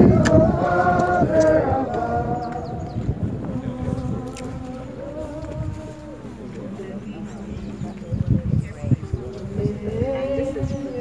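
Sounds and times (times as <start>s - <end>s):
group singing a slow hymn: 0.0s - 11.0s.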